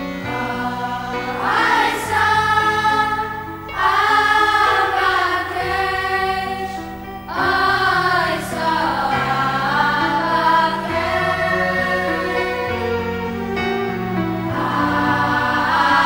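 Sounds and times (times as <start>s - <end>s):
boys' choir singing: 0.0s - 16.0s
instrumental accompaniment: 0.0s - 16.0s.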